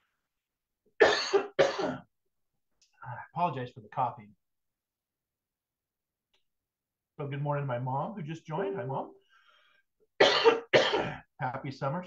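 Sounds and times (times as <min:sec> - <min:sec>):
man coughing: 0:01.0 - 0:02.1, 0:10.2 - 0:11.3.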